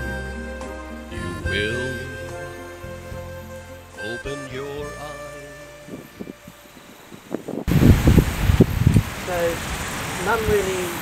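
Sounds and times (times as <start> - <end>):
wind buffeting microphone: 5.4 - 11.0.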